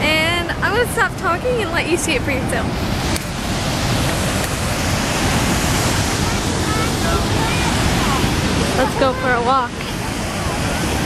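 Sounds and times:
waterfall rushing: 0.0s - 11.0s
wind buffeting microphone: 0.0s - 11.0s.

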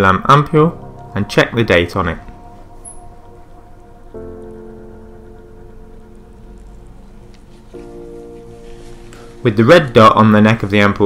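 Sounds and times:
music of held chords: 0.0s - 11.0s.

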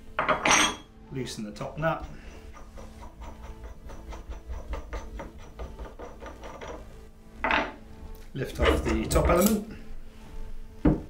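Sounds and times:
metal nut unscrewing on threads: 2.0s - 9.7s.

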